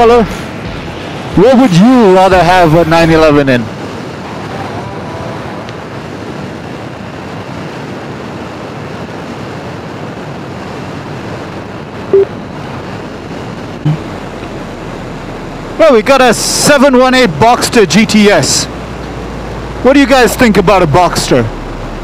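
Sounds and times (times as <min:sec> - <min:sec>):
road and traffic noise: 0:00.0 - 0:22.0
wind rushing on microphone: 0:00.0 - 0:22.0
brief loud blips: 0:12.1 - 0:12.3.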